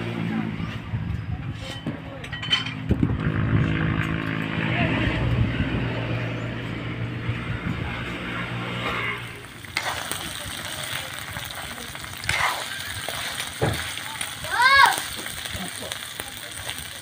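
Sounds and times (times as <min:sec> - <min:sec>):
engine drone: 0:02.8 - 0:13.4
metal spatula scraping wok: 0:08.5 - 0:14.2
crabs sizzling in oil: 0:09.0 - 0:17.0.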